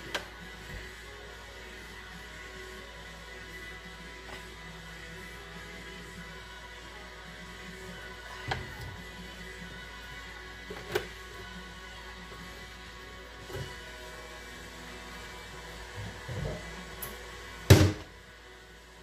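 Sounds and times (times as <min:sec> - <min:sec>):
background music: 0:00.0 - 0:19.0.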